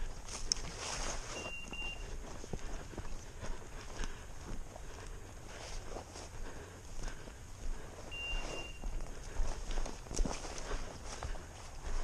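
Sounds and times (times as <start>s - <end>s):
boots on stony dirt: 0.0s - 12.0s.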